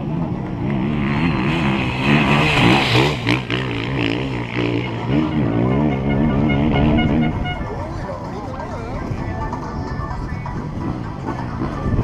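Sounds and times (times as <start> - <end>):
motorcycle engine revving: 0.0 - 7.6.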